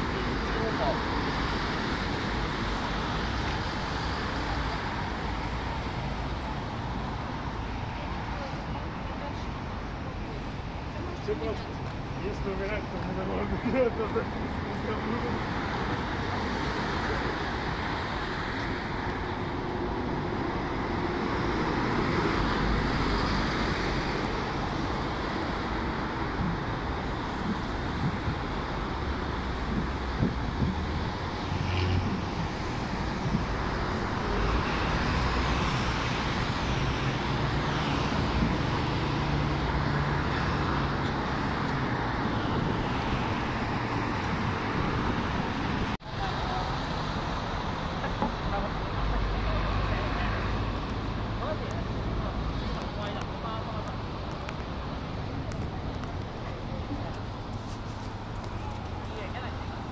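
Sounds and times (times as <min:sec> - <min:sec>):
road traffic rumble: 0:00.0 - 0:59.9.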